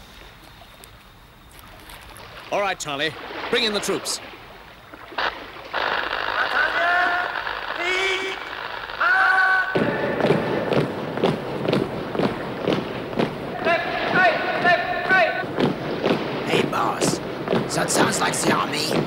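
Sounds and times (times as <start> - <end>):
shouted calls: 5.7 - 19.0
marching thuds: 9.7 - 19.0.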